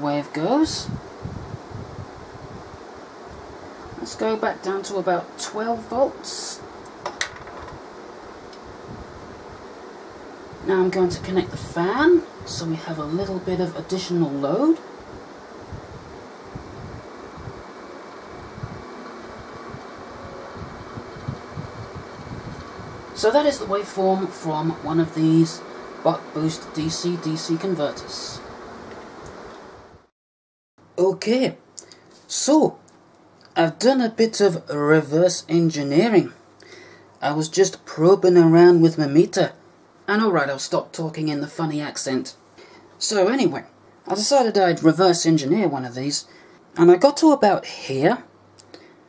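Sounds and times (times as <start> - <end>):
low background hiss: 0.0 - 30.0, 30.8 - 49.0.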